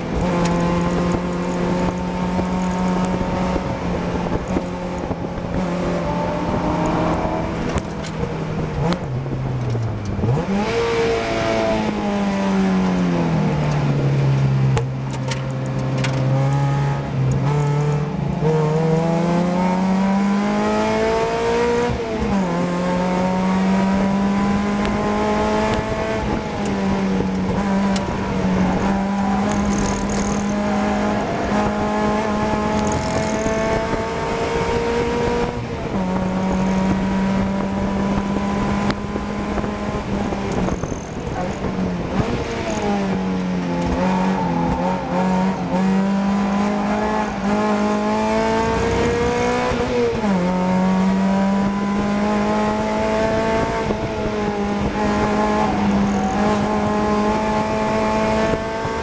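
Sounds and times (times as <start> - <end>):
car engine accelerating: 0.0 - 59.0.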